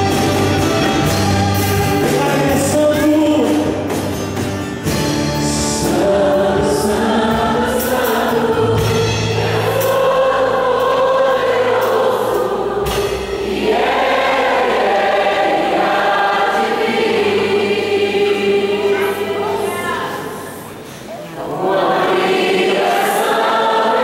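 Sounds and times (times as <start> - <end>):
gospel band and singers: 0.0 - 24.0.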